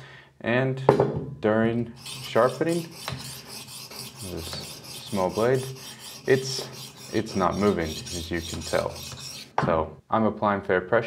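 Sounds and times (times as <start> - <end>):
knife sharpener scraping blade: 2.0 - 9.6.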